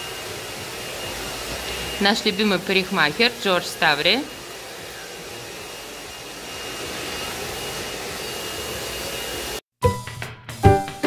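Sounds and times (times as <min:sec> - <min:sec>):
hair dryer blowing: 0:00.0 - 0:09.6.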